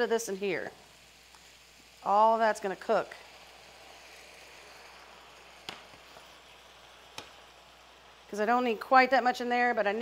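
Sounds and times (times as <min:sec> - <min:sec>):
shrimp sizzling in pans: 0:00.0 - 0:10.0.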